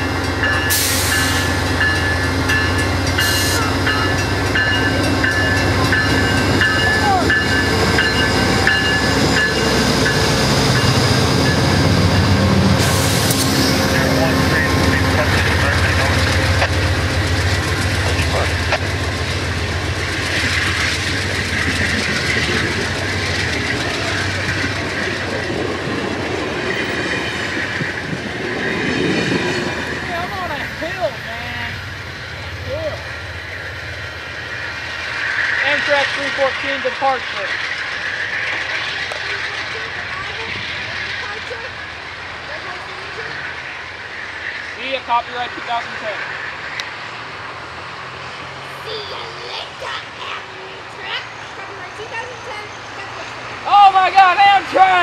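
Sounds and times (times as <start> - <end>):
train wheel squeals: 0.0 - 18.5
diesel locomotive engine throttling up: 0.0 - 44.8.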